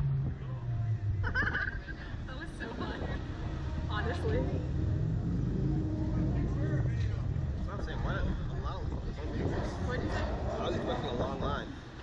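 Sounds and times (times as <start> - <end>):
steady low rumble: 0.0 - 12.0
people talking: 0.4 - 4.8, 5.6 - 11.8
people laughing: 1.2 - 3.2.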